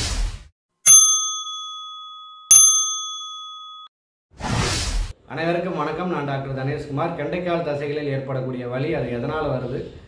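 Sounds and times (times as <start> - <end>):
electronic ding chimes: 0.9 - 3.9.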